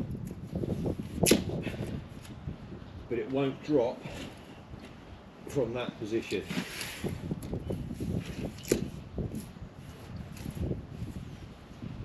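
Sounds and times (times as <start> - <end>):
tape rustling and rubbing: 6.3 - 11.7.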